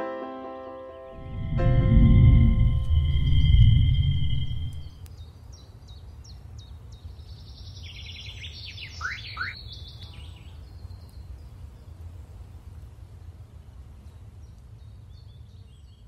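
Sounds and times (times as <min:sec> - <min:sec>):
music: 0:00.0 - 0:02.9
steady low rumble: 0:01.1 - 0:05.2
birds chirping and calling: 0:07.7 - 0:10.6.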